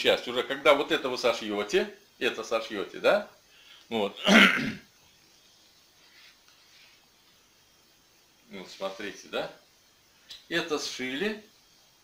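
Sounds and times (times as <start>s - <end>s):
man clearing his throat: 4.2s - 4.9s.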